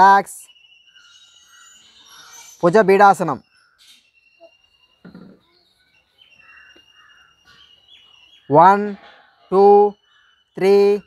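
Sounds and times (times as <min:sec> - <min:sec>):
birds calling: 0:00.0 - 0:11.0
high whistled notes: 0:00.0 - 0:11.0
crows cawing: 0:06.2 - 0:10.6.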